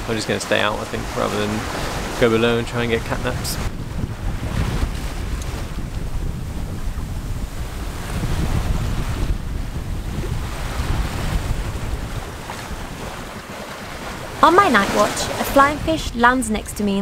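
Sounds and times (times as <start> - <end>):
ocean waves: 0.0 - 17.0
wind noise on microphone: 0.0 - 17.0.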